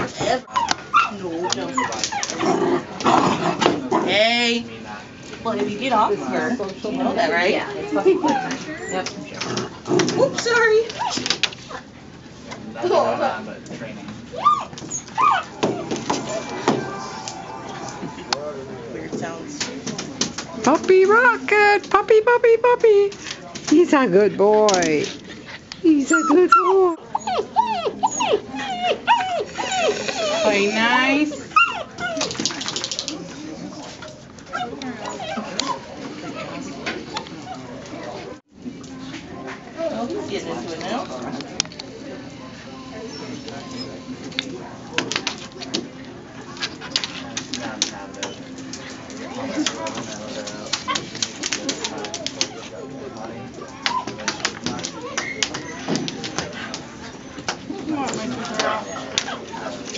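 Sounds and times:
puppy whining and yipping: 14.3s - 17.4s, 26.0s - 32.4s, 34.5s - 36.5s
puppies' claws clicking on tile: 32.0s - 35.8s, 46.5s - 59.9s.

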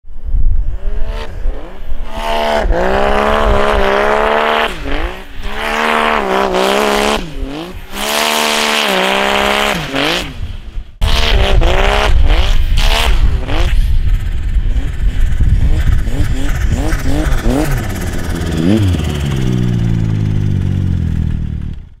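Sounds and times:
snowmobile engine revving hard: 0.7s - 21.7s.

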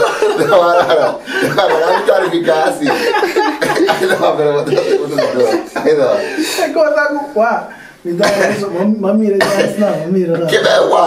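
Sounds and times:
person chuckling: 0.0s - 6.6s
people talking: 0.0s - 11.0s.

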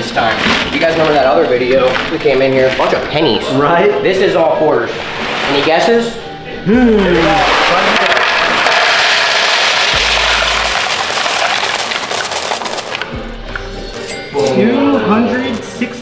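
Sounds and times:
coins pouring onto scale: 8.0s - 13.1s
coins clinking: 8.2s - 13.2s.

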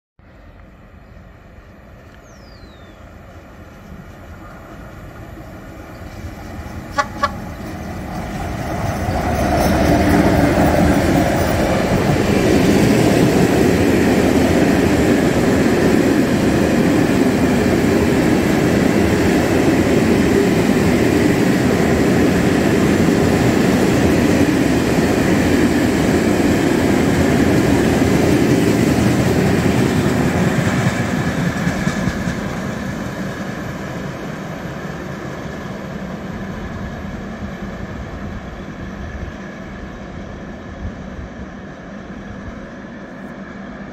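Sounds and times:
freight train wheels on rails: 0.4s - 43.9s.

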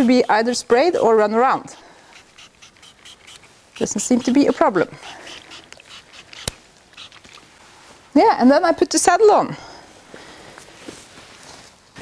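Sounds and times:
faint rustling: 9.7s - 12.0s.

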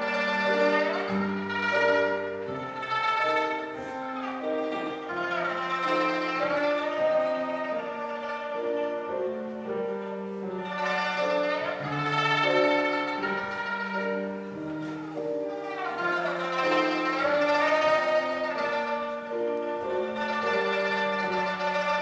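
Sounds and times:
lute melody of held notes: 0.0s - 22.0s
piano accompaniment: 0.0s - 22.0s.

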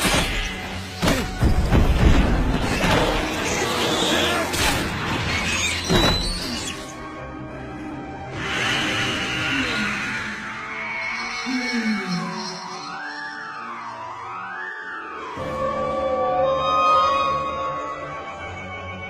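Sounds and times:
dramatic soundtrack music: 0.0s - 19.0s.

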